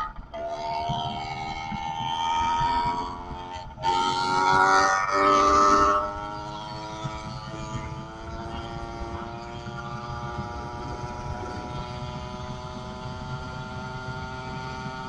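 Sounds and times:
two-stroke bicycle engine running: 0.0s - 15.0s.

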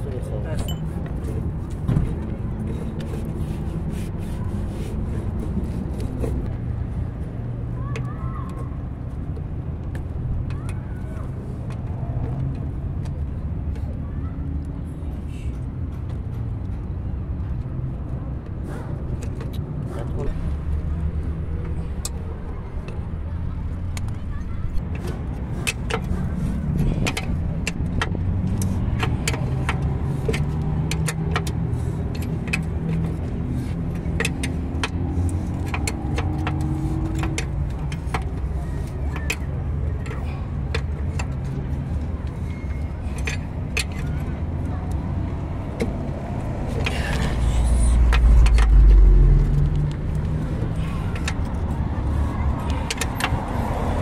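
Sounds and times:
low engine rumble: 0.0s - 54.0s.

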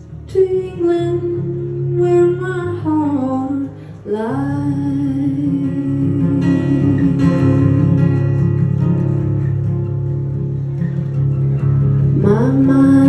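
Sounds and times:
acoustic guitar playing: 0.0s - 13.0s.

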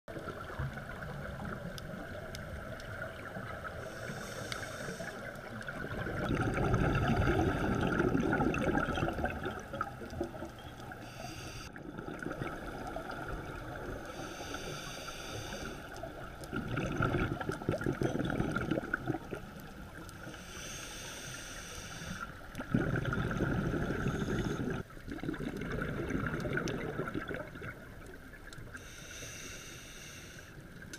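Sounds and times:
faint steady hum: 0.1s - 30.9s
regulator inhale hiss: 3.7s - 5.7s, 11.0s - 11.8s, 14.0s - 16.1s, 20.2s - 22.5s, 23.9s - 24.8s, 28.7s - 30.8s
exhaust bubbles rushing: 5.8s - 9.8s, 16.5s - 19.4s, 22.6s - 27.8s.

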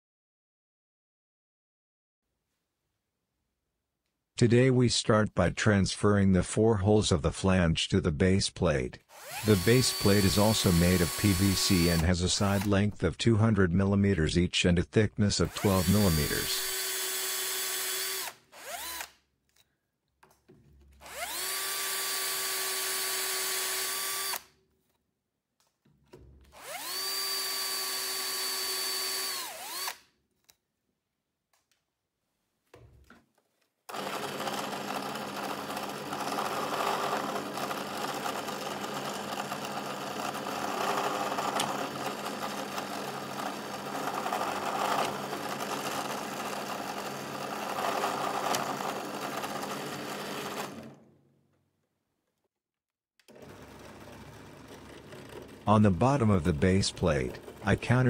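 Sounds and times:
drill press running: 9.1s - 12.8s, 15.4s - 19.2s, 20.9s - 24.5s, 26.1s - 30.0s, 33.9s - 51.2s, 53.2s - 58.0s
electric drill whining: 9.1s - 12.8s, 15.4s - 19.2s, 20.9s - 24.5s, 26.5s - 30.1s, 33.9s - 51.1s.

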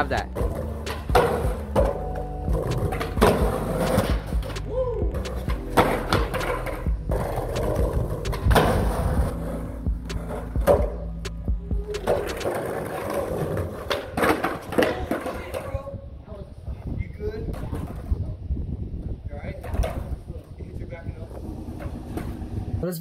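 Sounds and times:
music: 0.0s - 13.4s
skateboards rolling on concrete: 0.0s - 23.0s
skateboard pops and clacks: 0.5s - 2.0s, 2.6s - 9.0s, 10.1s - 15.8s.

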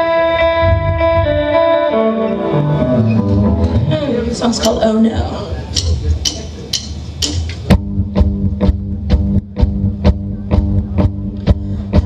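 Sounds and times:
bass and guitars chord: 0.0s - 12.0s
drums steady beat: 3.7s - 12.0s.

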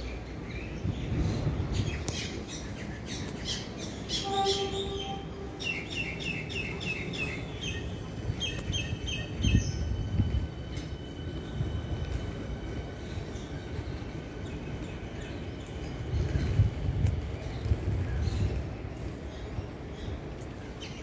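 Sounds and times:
birds chirping: 0.0s - 16.8s.

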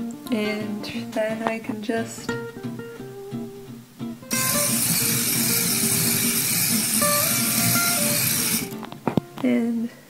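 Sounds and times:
guitar music: 0.0s - 9.8s
robot drive motors running: 4.3s - 8.8s.

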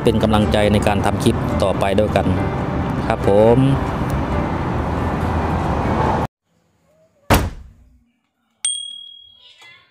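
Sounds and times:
ringing bell ding: 8.6s - 9.9s.

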